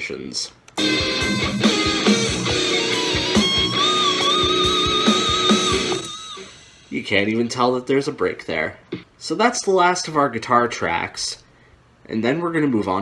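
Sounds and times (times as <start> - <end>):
electric guitar solo: 0.8 - 6.6.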